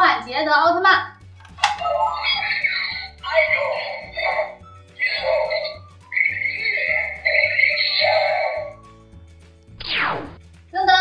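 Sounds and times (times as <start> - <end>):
toy electronic sound effects and music: 1.6 - 9.0.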